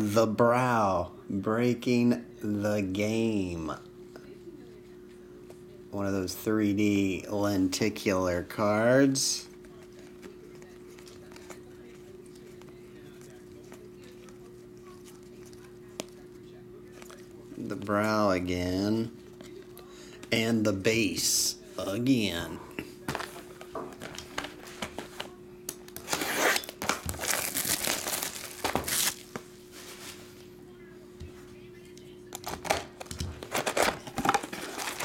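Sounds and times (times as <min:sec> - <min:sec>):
plastic shrink-wrap crinkling: 0:25.9 - 0:29.4, 0:33.4 - 0:35.0
trading cards being flipped: 0:25.9 - 0:29.4.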